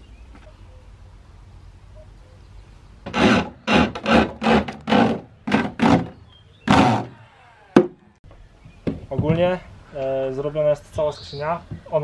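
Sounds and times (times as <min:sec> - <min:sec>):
handsaw cutting wood: 0:03.1 - 0:08.0.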